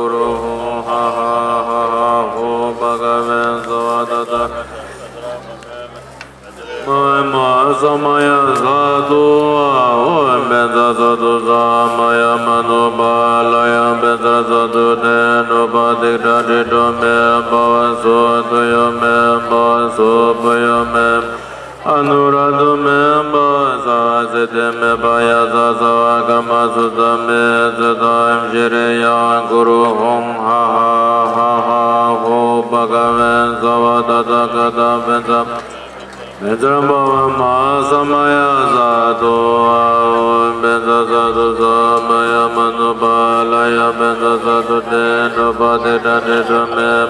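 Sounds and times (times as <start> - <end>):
man chanting: 0.0 - 47.0.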